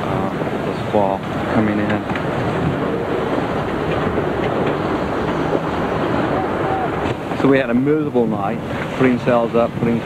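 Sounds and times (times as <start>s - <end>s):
sea water rushing: 0.0s - 10.0s
strong wind rushing: 0.0s - 10.0s
wind buffeting microphone: 0.0s - 10.0s.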